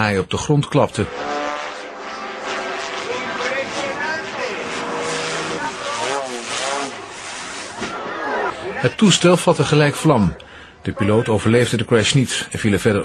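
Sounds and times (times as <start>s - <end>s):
plane engine pitch swinging: 0.8s - 8.8s
voices: 2.9s - 13.0s.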